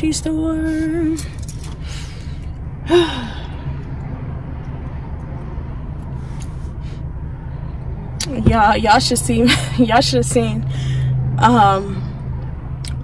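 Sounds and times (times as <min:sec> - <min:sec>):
low hum inside car: 0:00.0 - 0:13.0
woman sighing: 0:02.8 - 0:03.6.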